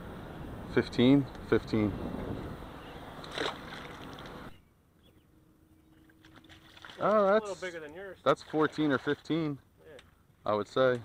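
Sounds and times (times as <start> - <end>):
water noise: 0.0 - 4.6, 5.8 - 9.6
wind: 0.0 - 11.0
fish splashing into water: 3.2 - 4.4, 6.1 - 7.1.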